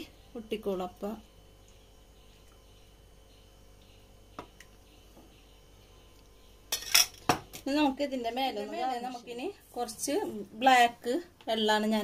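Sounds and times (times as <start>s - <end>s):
woman talking: 0.0s - 1.3s, 7.6s - 12.0s
utensil clinking on cooking pot: 6.7s - 7.7s.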